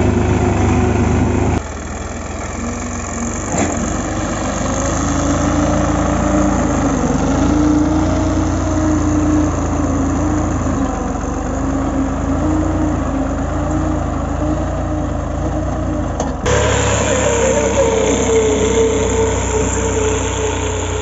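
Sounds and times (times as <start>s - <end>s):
tractor diesel engine running: 0.0s - 21.0s
blade dragging through soil: 16.5s - 21.0s.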